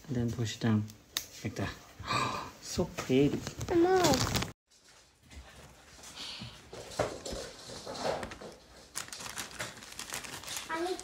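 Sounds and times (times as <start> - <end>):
plastic bag crinkling: 3.4 - 4.6, 7.8 - 11.0
child's voice: 3.7 - 4.3, 10.6 - 11.0.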